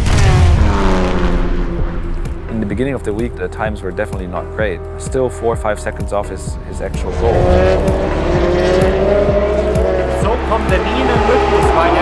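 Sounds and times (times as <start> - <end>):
race car passing at speed: 7.0 - 12.0.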